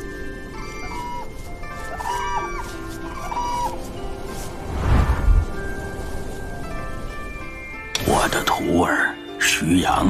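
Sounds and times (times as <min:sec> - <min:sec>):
cranes calling: 0:00.0 - 0:04.5
background music: 0:00.0 - 0:10.0.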